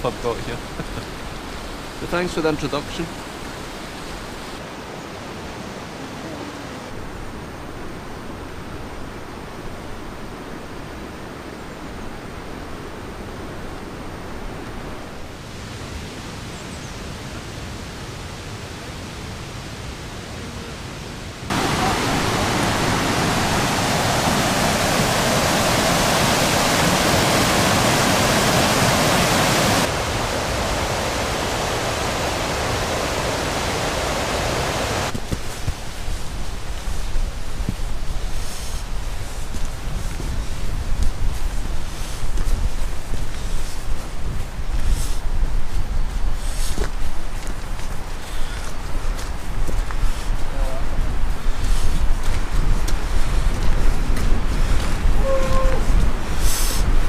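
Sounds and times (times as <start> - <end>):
fast-flowing river rushing: 21.5 - 38.0.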